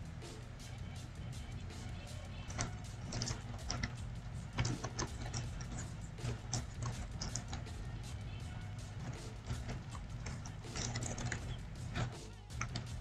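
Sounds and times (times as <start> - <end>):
low steady hum: 0.0 - 13.0
computer keyboard typing: 2.5 - 8.1, 8.9 - 13.0.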